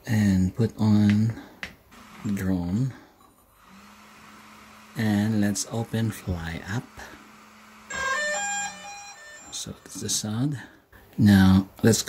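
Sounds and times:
drone power-on chime: 0:07.9 - 0:10.0.

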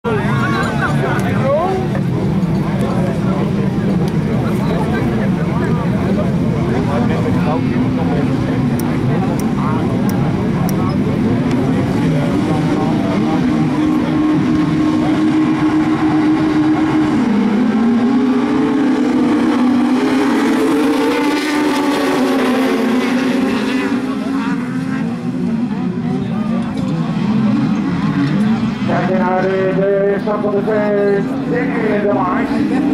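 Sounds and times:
race car engines revving: 0:00.0 - 0:32.9.

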